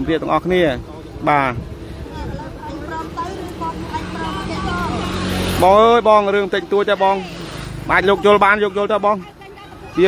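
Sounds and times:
vehicle engine hum passing: 0:00.8 - 0:10.0
man talking: 0:07.8 - 0:09.2.

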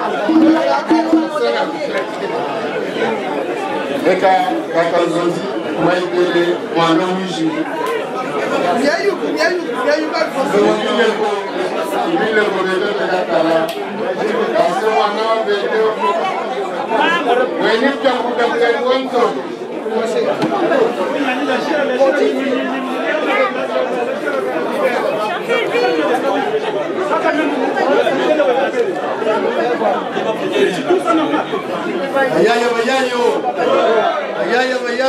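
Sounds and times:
indistinct crowd chatter: 0:00.0 - 0:35.0.

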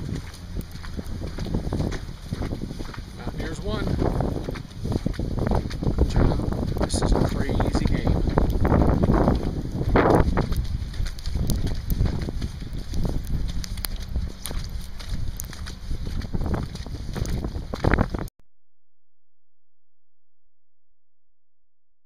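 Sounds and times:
wind buffeting microphone: 0:00.0 - 0:18.3.

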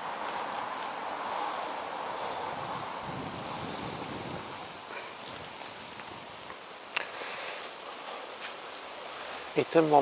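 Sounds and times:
rushing wind: 0:00.0 - 0:08.0.

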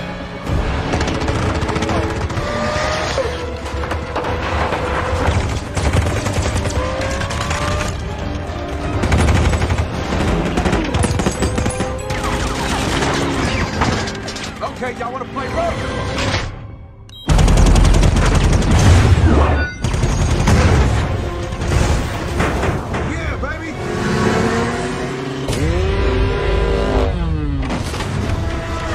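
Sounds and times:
film score music: 0:00.0 - 0:28.9
machine-gun fire: 0:00.7 - 0:02.7, 0:08.9 - 0:13.1, 0:17.3 - 0:19.2
engines revving: 0:23.6 - 0:28.9.

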